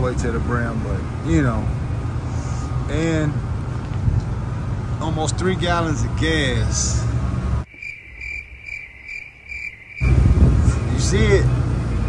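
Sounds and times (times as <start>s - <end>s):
crickets chirping: 7.6s - 10.4s
low rumble: 10.0s - 11.2s.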